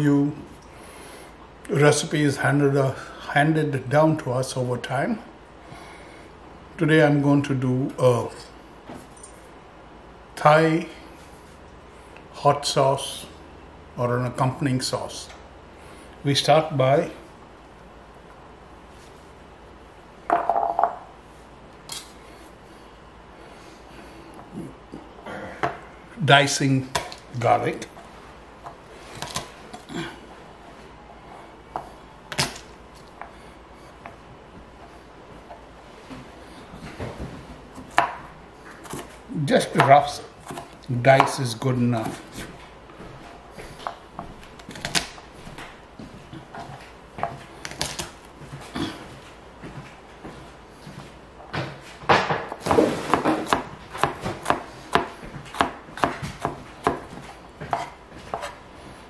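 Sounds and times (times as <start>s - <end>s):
knife chopping on board: 39.7s - 41.4s, 52.1s - 58.6s.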